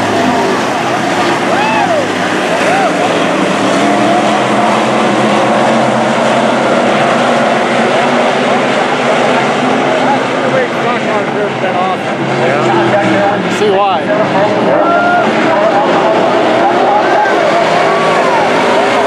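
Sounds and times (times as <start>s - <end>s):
stock car engines racing: 0.0s - 19.0s.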